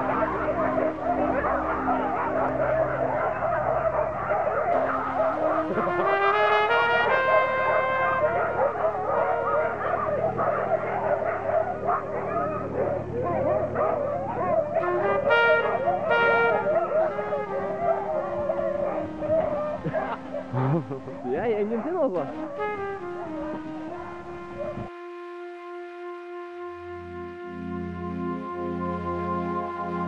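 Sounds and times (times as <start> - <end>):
sled dogs barking and yelping: 0.0 - 24.9, 26.2 - 30.0
slow melodic music: 0.0 - 30.0.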